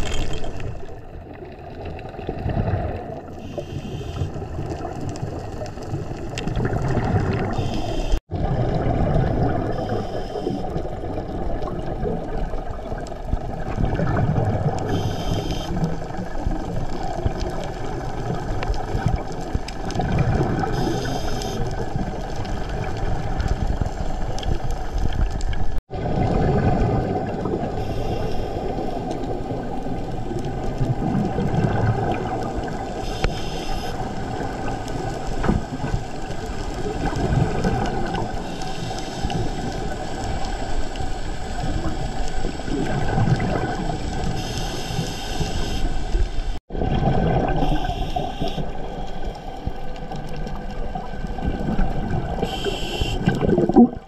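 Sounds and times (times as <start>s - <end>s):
exhaled bubbles gushing: 0.0s - 45.0s, 46.6s - 54.0s
underwater rushing water: 0.0s - 54.0s
diver regulator breath: 3.4s - 4.5s, 9.7s - 10.8s, 20.7s - 21.7s, 27.7s - 29.1s, 38.4s - 40.8s, 44.3s - 46.4s, 52.4s - 53.4s.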